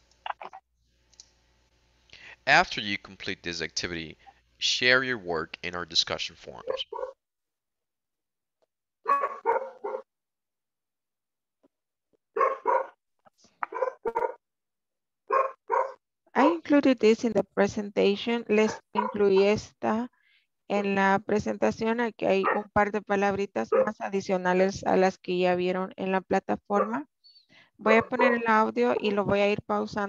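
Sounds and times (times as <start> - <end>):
dog barking: 6.6 - 7.2, 9.1 - 10.1, 12.4 - 13.0, 13.6 - 14.4, 15.3 - 16.0, 18.6 - 19.6, 22.4 - 22.7, 23.7 - 24.0, 27.9 - 28.5.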